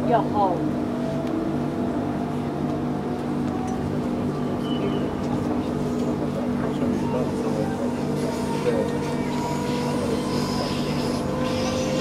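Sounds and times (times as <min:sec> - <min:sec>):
electric train hum: 0:00.0 - 0:12.0
low rumble of train car: 0:00.0 - 0:12.0.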